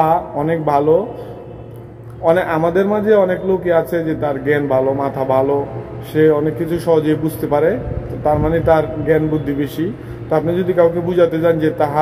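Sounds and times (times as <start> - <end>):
man narrating: 2.2 - 12.0.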